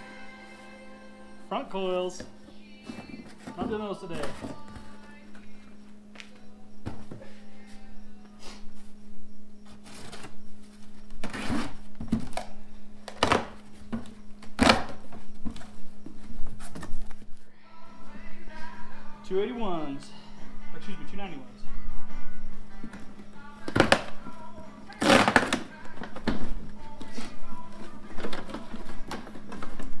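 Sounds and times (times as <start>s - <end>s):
steady low hum: 0.0s - 30.0s
cardboard boxes handled: 2.2s - 5.0s
packing tape ripping: 11.2s - 13.6s, 14.4s - 15.0s, 24.9s - 26.5s.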